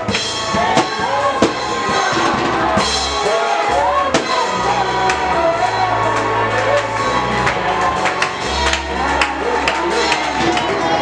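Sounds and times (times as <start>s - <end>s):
bass line: 0.0s - 11.0s
drum kit: 0.0s - 11.0s
person singing: 0.0s - 11.0s.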